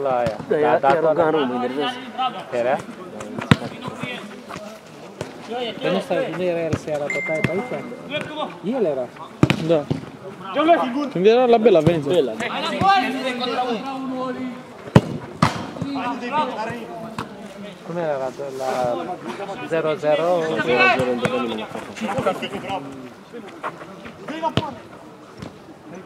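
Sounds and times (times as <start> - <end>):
ball hitting something: 14.9 - 15.9.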